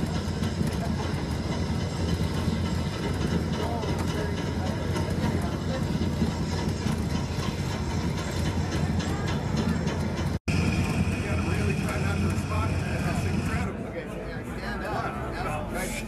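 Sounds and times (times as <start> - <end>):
low rumbling and clatter: 0.0 - 13.7
voices: 0.0 - 16.0.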